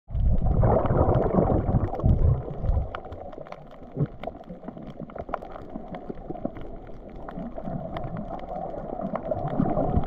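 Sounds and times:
faint crackling clicks: 0.1s - 10.0s
underwater gurgling rumble: 0.1s - 10.0s.

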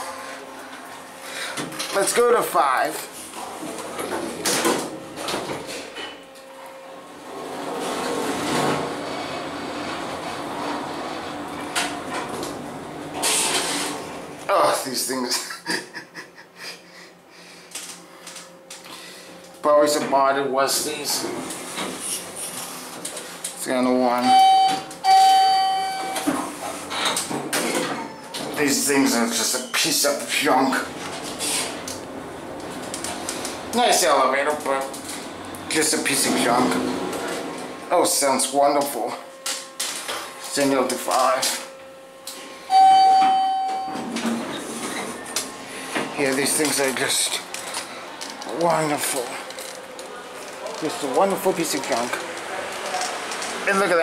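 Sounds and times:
elevator low hum: 0.0s - 15.6s, 16.9s - 53.9s
elevator arrival chime: 24.2s - 26.3s, 40.6s - 44.2s
faint higher tone: 42.7s - 44.0s.

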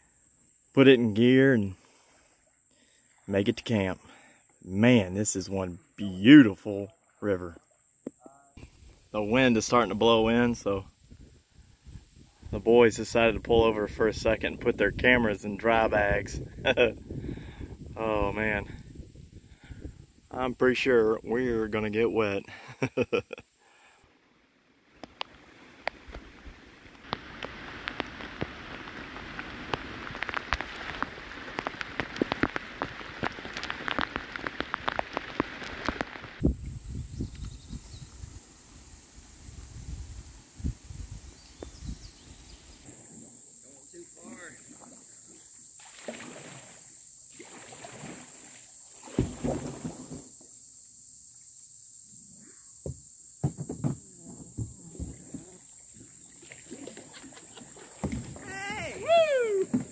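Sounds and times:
rain falling on water: 24.8s - 36.5s, 54.8s - 59.9s.

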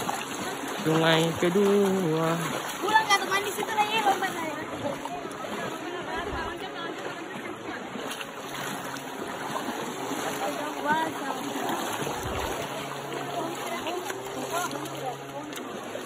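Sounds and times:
faint voices: 0.0s - 16.0s
feet splashing in water: 0.0s - 16.0s
stream running over stones: 0.0s - 16.0s.

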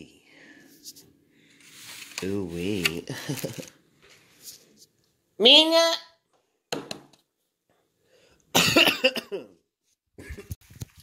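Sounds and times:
person coughing: 8.5s - 9.6s.

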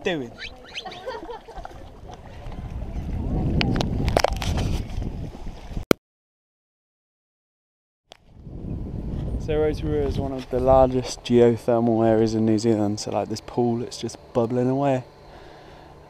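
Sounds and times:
water sloshing against stone wall: 0.5s - 2.7s
wind rumbling on microphone: 0.6s - 5.8s, 8.2s - 12.6s.

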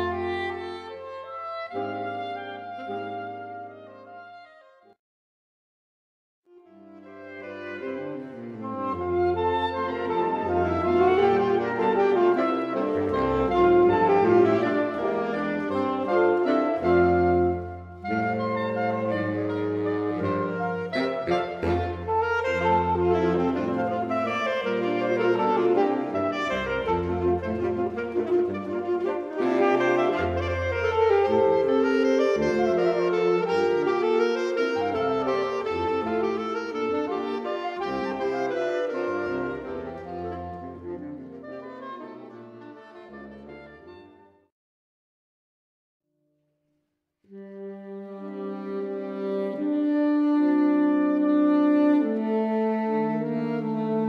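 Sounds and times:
saxophone ensemble playing folk tune: 0.0s - 4.9s, 6.6s - 44.4s, 47.3s - 54.0s.

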